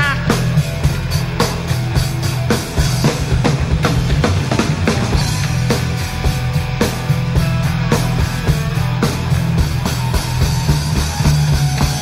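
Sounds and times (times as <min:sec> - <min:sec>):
bass guitar: 0:00.0 - 0:12.0
drum kit beat: 0:00.0 - 0:12.0
electric guitar: 0:00.0 - 0:12.0.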